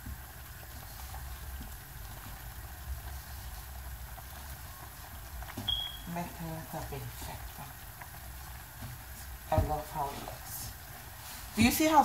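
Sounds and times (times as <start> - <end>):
hands kneading dough: 0.0 - 12.0.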